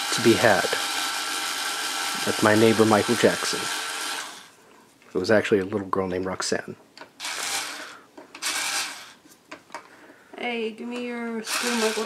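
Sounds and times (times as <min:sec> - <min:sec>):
screwdriver rasping and rattling: 0:07.2 - 0:09.2, 0:11.5 - 0:12.0.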